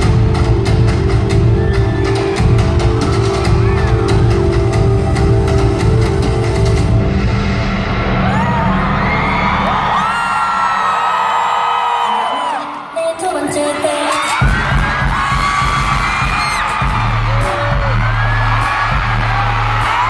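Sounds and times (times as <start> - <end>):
pop music with heavy beat: 0.0 - 10.8, 11.9 - 20.0
audience screaming and cheering: 0.0 - 20.0.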